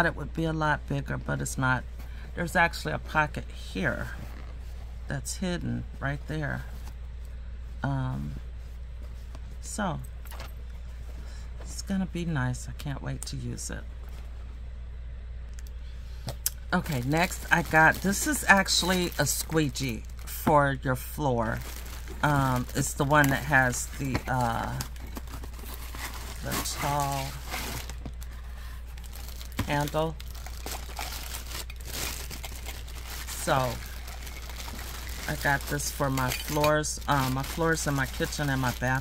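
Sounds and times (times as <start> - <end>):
steady low hum: 0.0 - 39.0
plastic packaging crinkling: 16.7 - 20.5, 21.4 - 39.0.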